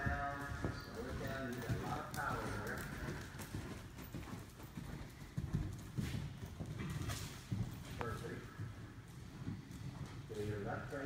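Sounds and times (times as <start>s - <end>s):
horse hoofbeats on sand: 0.0s - 11.0s.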